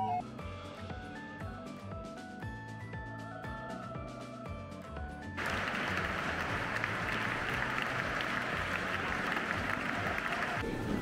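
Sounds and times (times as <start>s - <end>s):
light music with bright notes: 0.0s - 11.0s
audience applauding: 5.4s - 11.0s.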